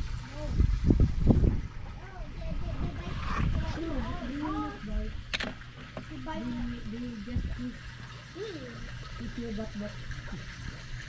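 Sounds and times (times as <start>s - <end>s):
people talking indistinctly: 1.9s - 10.1s.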